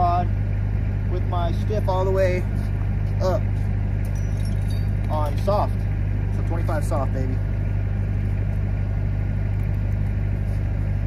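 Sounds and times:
welding machine engine droning: 0:00.0 - 0:11.0.

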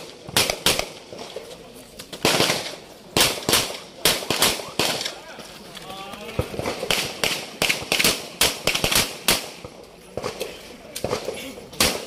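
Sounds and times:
gunshots: 0:00.0 - 0:01.4, 0:02.2 - 0:05.2, 0:06.3 - 0:12.0.

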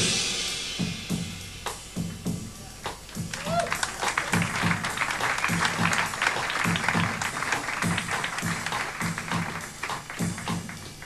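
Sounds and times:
jazz drum kit playing: 0:00.0 - 0:11.0
audience applause: 0:03.2 - 0:11.0.

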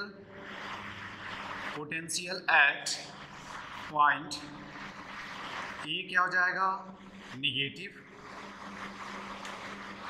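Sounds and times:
marker scratching on whiteboard: 0:00.0 - 0:10.0
steady low hum: 0:00.0 - 0:10.0.

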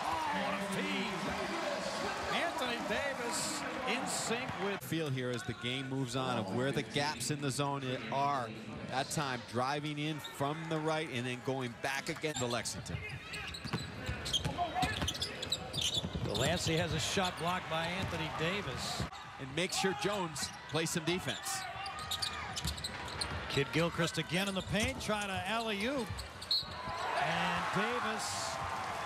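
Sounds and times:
television sports commentary: 0:00.0 - 0:22.2, 0:23.3 - 0:29.0
arena crowd noise: 0:00.0 - 0:29.0
shoe squeaks: 0:12.4 - 0:17.4, 0:21.3 - 0:23.4, 0:24.3 - 0:27.3.

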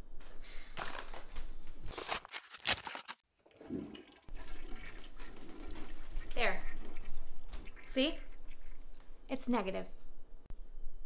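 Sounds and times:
toilet flushing: 0:03.4 - 0:06.4.

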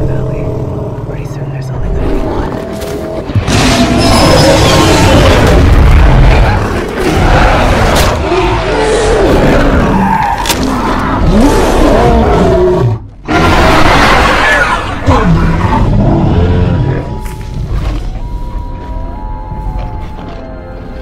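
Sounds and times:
predators roaring and growling: 0:00.0 - 0:17.2
music with sustained notes: 0:16.6 - 0:21.0.

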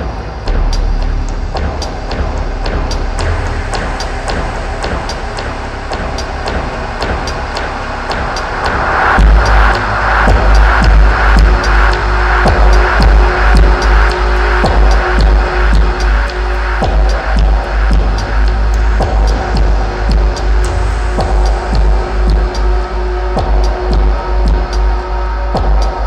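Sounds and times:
dark heavy electronic music: 0:00.0 - 0:26.0
deep pulsing sub-bass: 0:00.0 - 0:26.0
ticking beat: 0:05.9 - 0:26.0.

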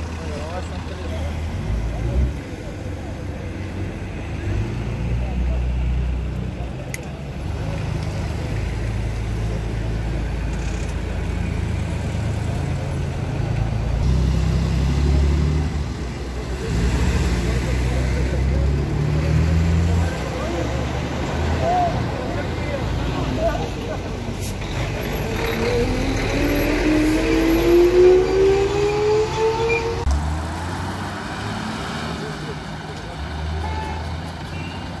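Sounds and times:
traffic engine rumble: 0:00.0 - 0:35.0
vehicle engine revving up: 0:14.0 - 0:21.6, 0:24.6 - 0:33.4.

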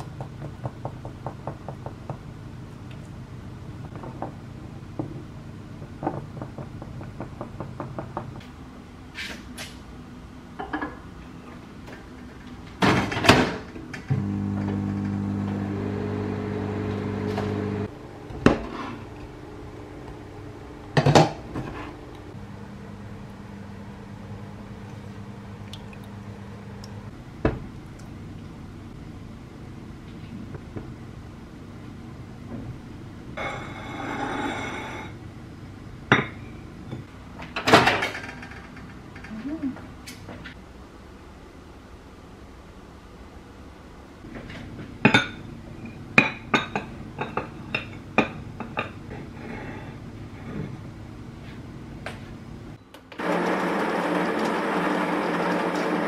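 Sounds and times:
electric appliance hum: 0:14.0 - 0:21.0, 0:51.8 - 0:56.0
dishes knocking and clinking: 0:46.2 - 0:49.0.

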